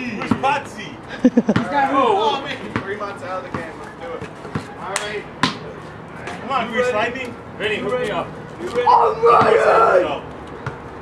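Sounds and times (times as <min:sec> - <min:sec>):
basketball bouncing on concrete: 0:01.4 - 0:01.8, 0:02.6 - 0:04.8, 0:05.4 - 0:05.7, 0:10.6 - 0:10.9
men calling out: 0:08.7 - 0:10.3.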